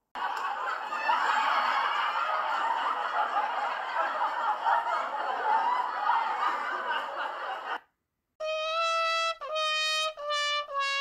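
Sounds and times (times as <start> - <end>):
people laughing together: 0.2 - 7.8.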